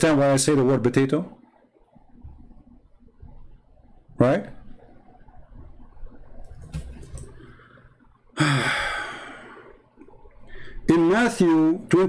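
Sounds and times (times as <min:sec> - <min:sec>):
man sighing: 0:08.4 - 0:09.8.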